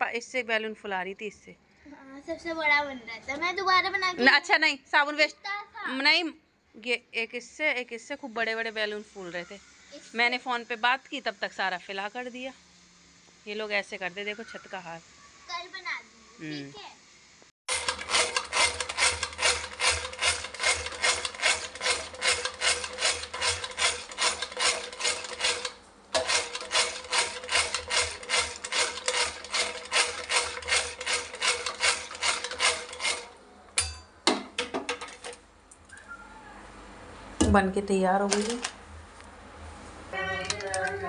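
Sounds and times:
electric beater whisking: 17.7s - 33.4s.

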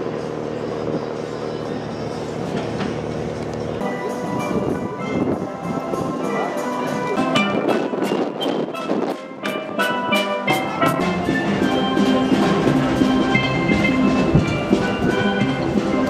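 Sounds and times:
steel band playing: 0.0s - 16.0s.

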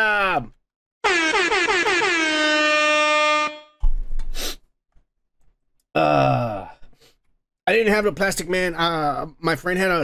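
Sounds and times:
air horn blasts: 1.0s - 3.8s.

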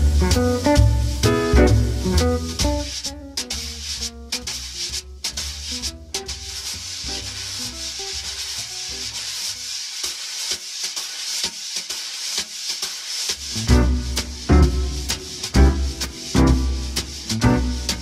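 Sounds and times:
quiet backing music with bass: 0.0s - 9.4s, 13.5s - 18.0s
brushes sweeping on snare drum: 0.0s - 18.0s.

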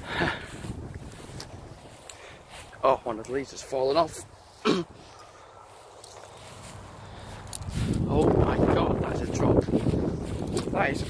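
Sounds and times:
faint footsteps on grass: 0.0s - 11.0s
wind buffeting microphone: 0.0s - 11.0s.

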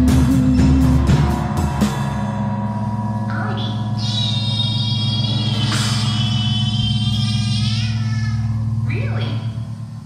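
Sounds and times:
pulsing low drone: 0.0s - 10.0s
high wavering bending tones: 0.5s - 10.0s.

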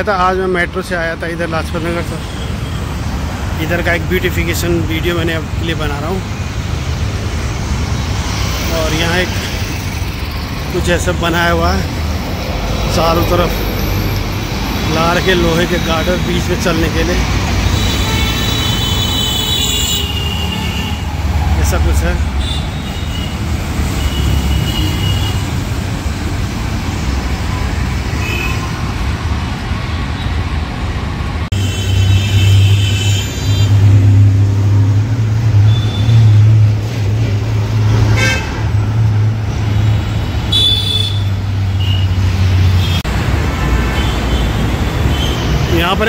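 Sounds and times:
road traffic running past: 0.0s - 46.0s
bus engine drone: 5.5s - 18.1s
car horns honking: 17.6s - 21.2s, 22.3s - 25.6s, 31.5s - 34.2s, 35.6s - 36.5s, 38.0s - 38.8s, 40.5s - 43.1s.

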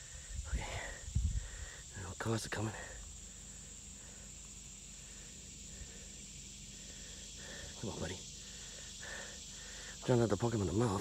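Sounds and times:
insect chorus trilling: 0.0s - 11.0s.

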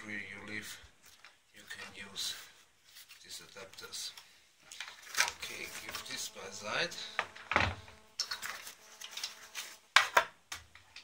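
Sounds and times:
rustling: 0.8s - 6.3s.

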